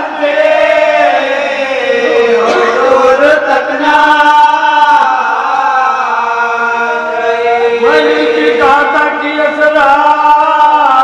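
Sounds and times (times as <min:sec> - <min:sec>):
men chanting unaccompanied: 0:00.0 - 0:11.0.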